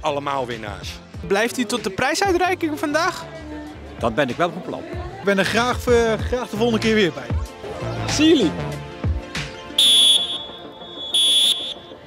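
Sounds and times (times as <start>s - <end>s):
referee's whistle blasts: 9.8s - 12.0s.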